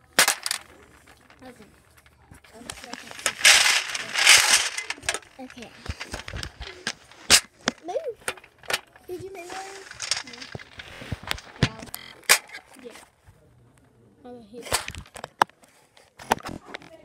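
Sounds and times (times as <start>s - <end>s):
soft voices: 0.0s - 12.1s.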